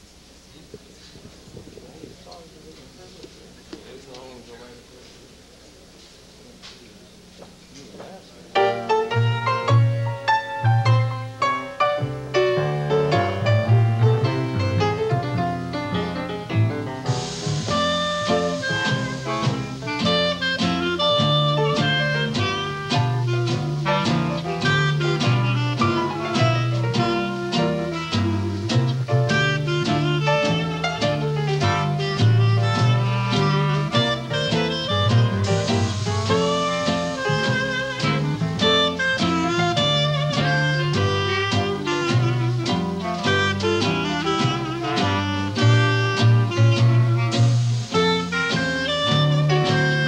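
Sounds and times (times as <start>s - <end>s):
jazz band playing swing: 5.0s - 50.0s
clarinet lines: 17.1s - 50.0s.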